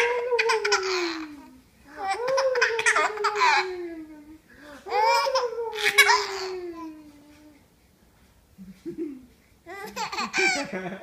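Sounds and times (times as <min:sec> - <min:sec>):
baby laughing: 0:00.0 - 0:01.4, 0:02.0 - 0:03.9, 0:04.9 - 0:06.9, 0:09.7 - 0:10.9.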